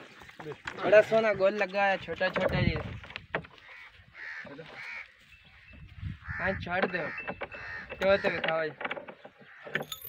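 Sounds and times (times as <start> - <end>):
bird calling: 3.5 - 10.0.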